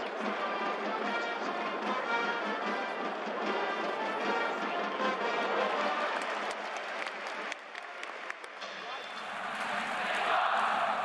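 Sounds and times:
crowd noise: 0.0 - 11.0
brass music with steady beat: 0.2 - 6.1.

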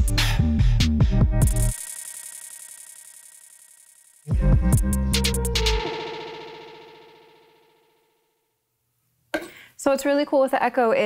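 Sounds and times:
dance track echo repeats: 1.2 - 8.1.

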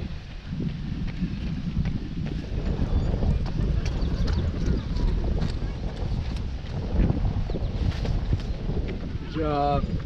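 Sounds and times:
running footsteps on wet asphalt: 0.0 - 10.0
steady low rumble: 0.0 - 10.0.

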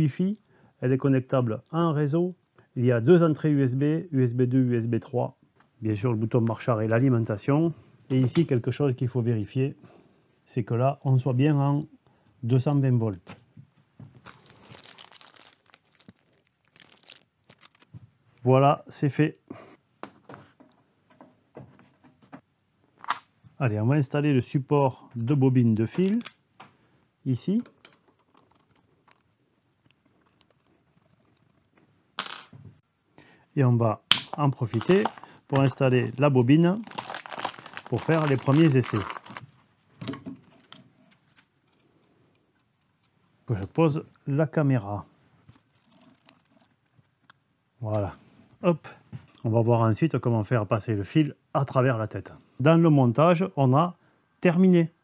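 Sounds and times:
plastic bag crinkling: 14.2 - 18.0, 34.3 - 39.5.

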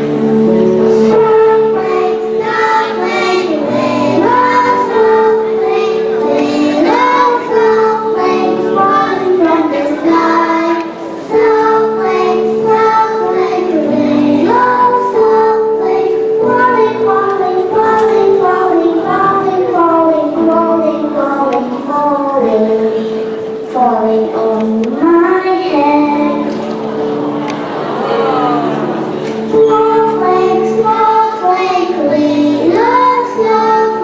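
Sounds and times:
children singing together: 0.0 - 34.0
instrumental accompaniment: 0.0 - 34.0.

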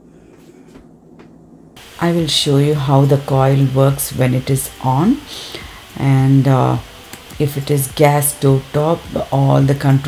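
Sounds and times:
faint low hum: 0.0 - 8.1.

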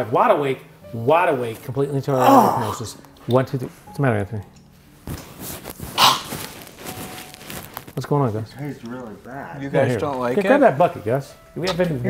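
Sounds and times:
man spluttering in disgust: 2.2 - 3.0.

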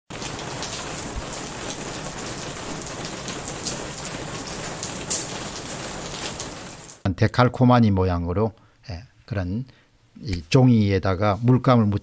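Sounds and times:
single raindrops: 0.1 - 7.0
steady rain hiss: 0.1 - 7.0.

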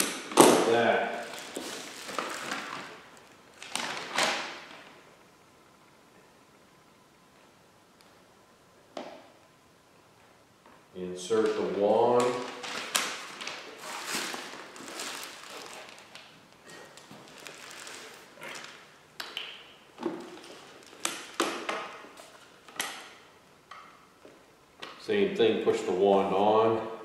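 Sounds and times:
handling rustling: 12.5 - 18.8.

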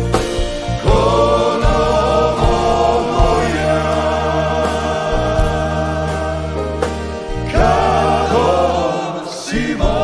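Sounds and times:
acoustic guitar: 0.0 - 10.0
bass: 0.0 - 10.0
piano: 0.0 - 10.0
male vocal ensemble singing: 0.6 - 10.0.

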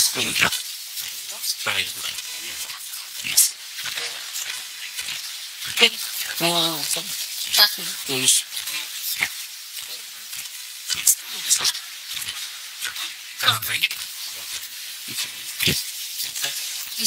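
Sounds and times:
radio static hiss: 0.0 - 17.0
chopped radio voice fragments: 5.8 - 8.4, 13.4 - 13.8.

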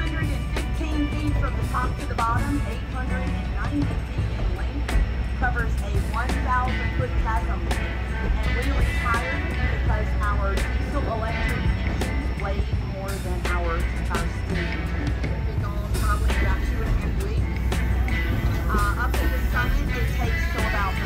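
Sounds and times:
melodic background music: 0.0 - 21.0
steady low rumble: 0.0 - 21.0.

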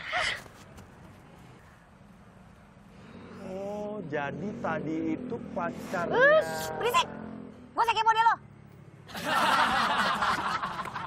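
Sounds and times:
canned audience laughter: 9.1 - 11.0.

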